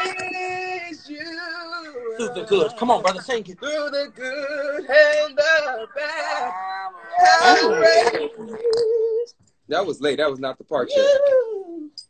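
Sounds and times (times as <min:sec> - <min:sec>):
overlapping voices: 0:00.0 - 0:09.1
voice holding wavering note: 0:04.2 - 0:09.2.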